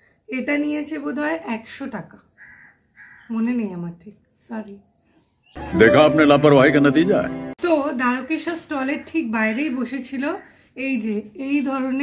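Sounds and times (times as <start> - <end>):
woman speaking: 0.3 - 2.2, 3.3 - 4.8, 7.6 - 12.0
crow cawing: 2.4 - 3.3.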